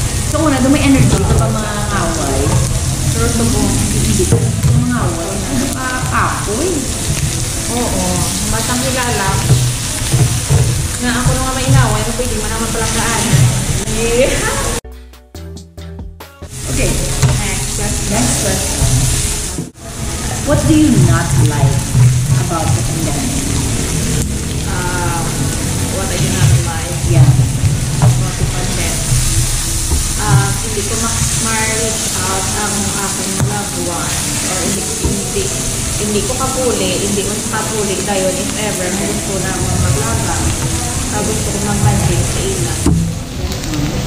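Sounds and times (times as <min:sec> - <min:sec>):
meat sizzling on grill plate: 0:00.0 - 0:14.8, 0:16.5 - 0:44.0
woman talking: 0:00.3 - 0:09.6, 0:11.0 - 0:14.8, 0:16.7 - 0:18.9, 0:20.4 - 0:23.5, 0:24.6 - 0:29.2, 0:30.2 - 0:44.0.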